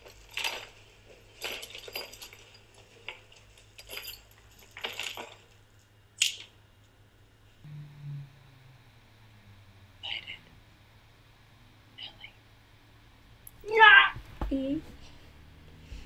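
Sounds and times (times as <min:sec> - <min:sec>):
light metallic clinks: 0:00.0 - 0:05.6
brief low hum: 0:07.6 - 0:12.4.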